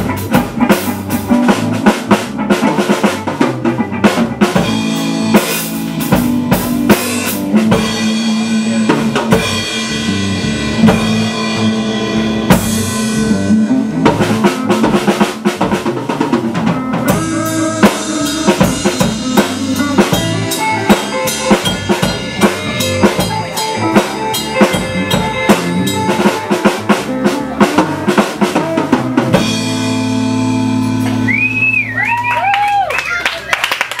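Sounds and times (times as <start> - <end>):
sliding high guitar notes: 0.0 - 32.2
drum kit with cymbal hits: 0.0 - 32.7
electric guitar: 0.0 - 33.2
bass guitar: 0.0 - 34.0.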